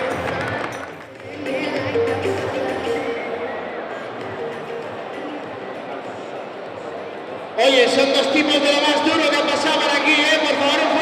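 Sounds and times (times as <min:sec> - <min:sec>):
crowd hubbub: 0:00.0 - 0:11.0.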